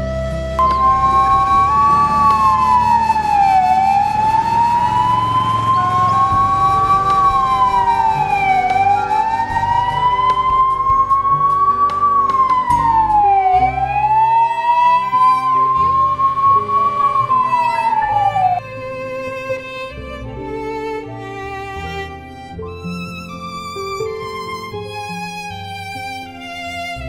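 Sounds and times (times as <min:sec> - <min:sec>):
ambulance siren wailing: 0:00.0 - 0:19.6
soft background music: 0:00.0 - 0:27.0.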